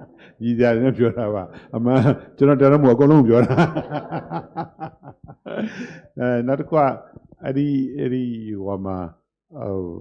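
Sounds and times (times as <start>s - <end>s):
man chuckling: 3.4s - 6.2s.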